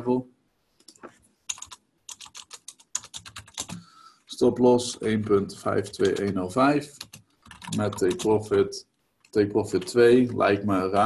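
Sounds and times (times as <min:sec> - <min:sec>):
typing on computer keyboard: 0:00.8 - 0:03.9, 0:05.2 - 0:08.5.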